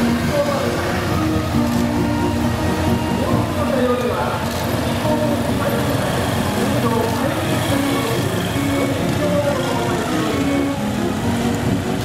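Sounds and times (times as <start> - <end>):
music with held notes: 0.0 - 3.7, 8.6 - 12.0
motorcycles and cars passing slowly: 0.0 - 12.0.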